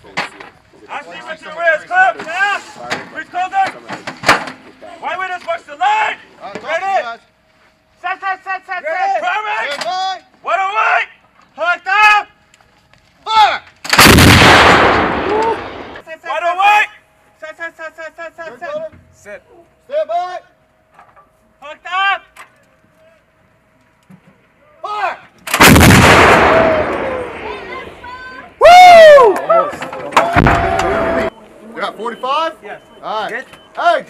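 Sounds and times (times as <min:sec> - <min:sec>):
howitzer blast: 0:13.9 - 0:16.0, 0:25.5 - 0:28.4.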